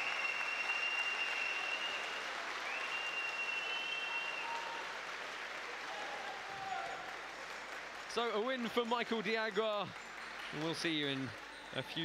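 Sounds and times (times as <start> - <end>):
audience applauding: 0.0 - 12.0.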